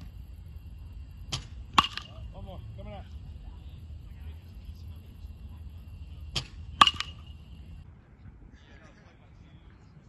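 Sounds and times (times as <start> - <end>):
bat cracking a ball: 1.2 - 2.3, 6.2 - 7.7.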